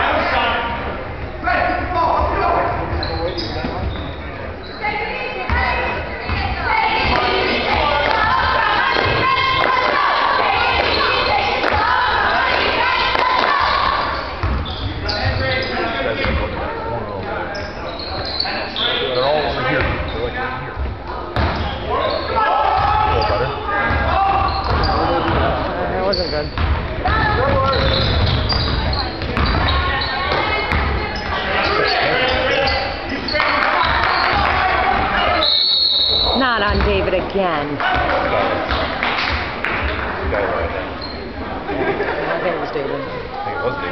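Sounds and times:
spectators' voices and calls: 0.0s - 43.9s.

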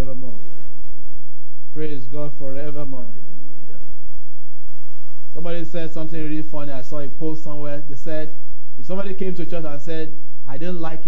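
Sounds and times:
faint voice: 0.0s - 1.0s, 1.8s - 4.0s
steady low hum: 0.0s - 11.0s.

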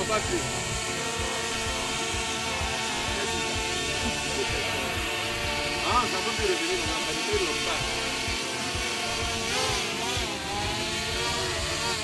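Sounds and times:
drone propellers whining: 0.0s - 12.0s.

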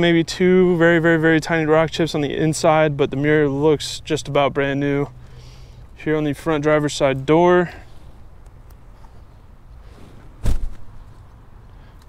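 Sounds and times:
low heavy thump: 10.4s - 11.0s.

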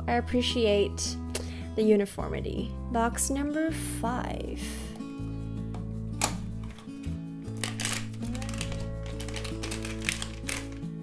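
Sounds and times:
soft background music: 0.0s - 11.0s
packaging clicks and crinkles: 7.6s - 11.0s.

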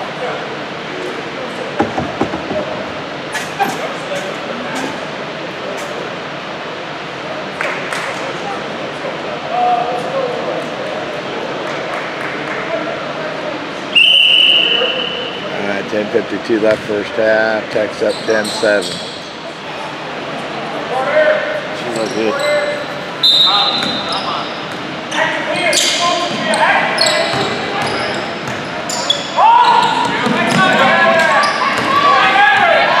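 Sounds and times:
indistinct voices echoing in gym: 0.0s - 33.0s
sharp knocks: 1.8s - 2.7s.

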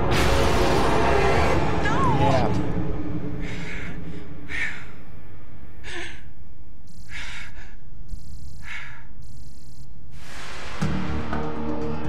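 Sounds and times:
woman breathing heavily: 3.3s - 10.4s.

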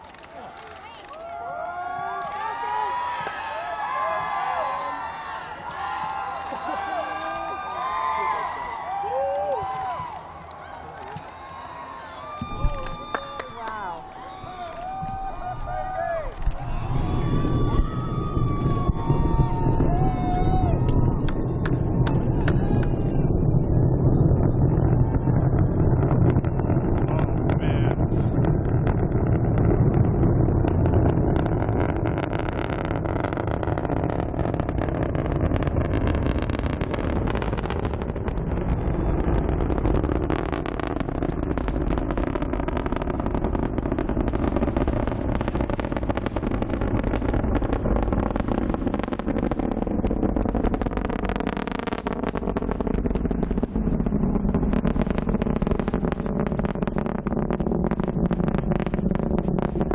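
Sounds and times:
rocket engines crackling rumble: 0.0s - 59.9s.

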